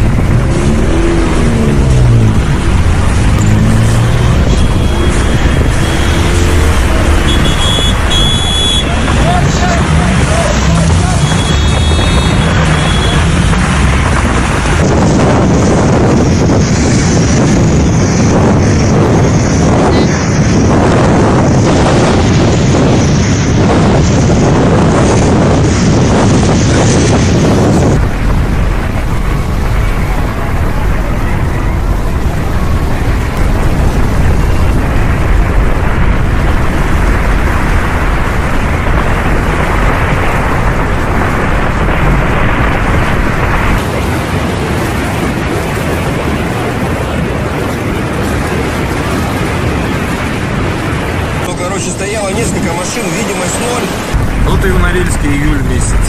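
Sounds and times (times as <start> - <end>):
storm wind buffeting microphone: 0.0 - 56.0.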